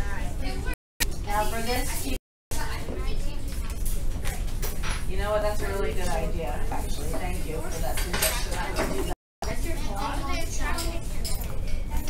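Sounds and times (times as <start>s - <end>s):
children's voices: 9.6s - 12.0s.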